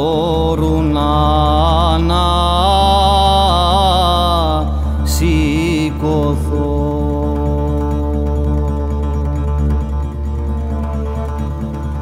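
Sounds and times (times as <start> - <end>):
man singing wavering notes: 0.0 - 12.0
steady low drone: 0.0 - 12.0.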